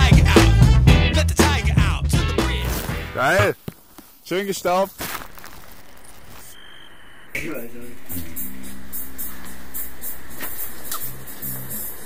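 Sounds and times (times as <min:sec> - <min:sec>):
skis rushing through powder snow: 0:02.7 - 0:06.6.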